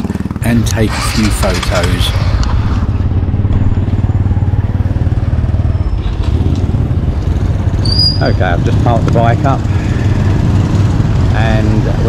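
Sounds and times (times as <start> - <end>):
motorcycle engine idling: 0.0 - 0.6, 2.4 - 12.0
motorcycle riding past: 0.0 - 12.0.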